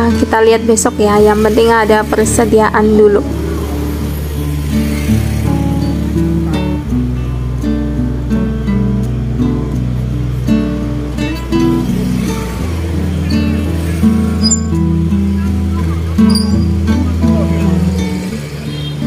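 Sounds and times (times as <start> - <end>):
melody over held bass note: 11.3 - 17.8.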